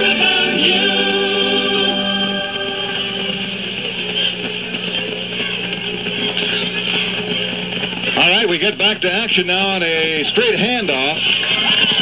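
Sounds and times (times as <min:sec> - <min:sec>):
steady low hum: 0:00.0 - 0:11.8
murmuring stadium crowd: 0:01.8 - 0:12.0.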